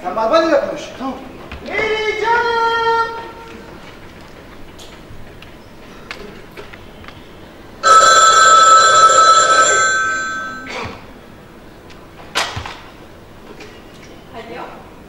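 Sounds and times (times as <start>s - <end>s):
telephone bell ringing: 7.8s - 10.9s.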